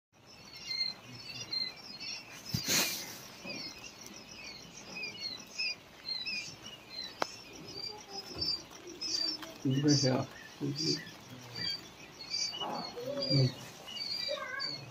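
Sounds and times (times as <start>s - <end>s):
quail chicks peeping: 0.2s - 14.9s.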